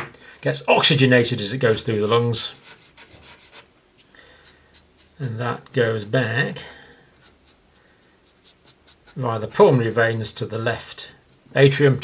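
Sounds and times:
marker pen scribbling on paper: 0:01.7 - 0:03.7, 0:04.4 - 0:05.4, 0:07.2 - 0:10.1.

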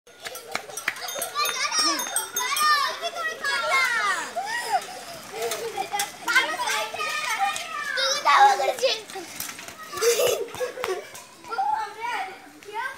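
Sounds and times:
children shouting excitedly: 0:01.0 - 0:12.9.

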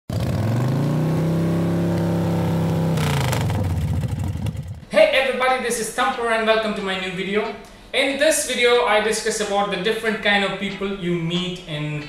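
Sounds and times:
engine rising in pitch: 0:00.1 - 0:04.8.

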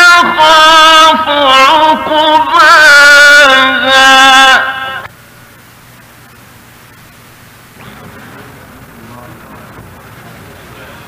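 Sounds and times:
man reciting: 0:00.0 - 0:05.1
old recording hiss: 0:00.0 - 0:11.0.

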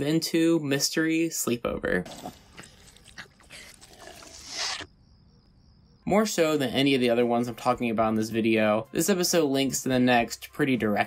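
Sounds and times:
wet chewing and smacking: 0:02.1 - 0:04.9.

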